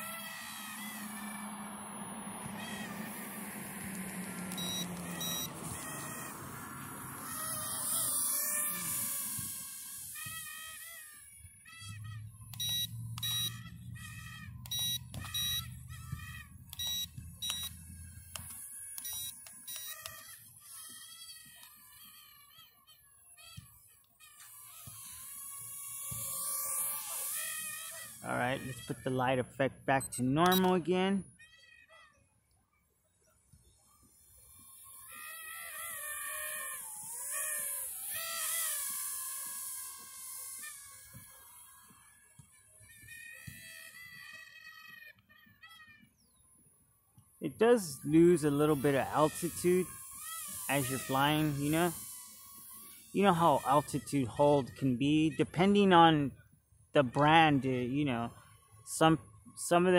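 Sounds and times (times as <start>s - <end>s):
toy drone propellers whining: 0.0s - 32.3s, 33.6s - 56.3s, 57.0s - 59.9s
short high chirps or beeps: 4.6s - 5.5s, 12.6s - 13.6s, 14.7s - 15.7s, 16.8s - 17.7s, 30.0s - 30.7s.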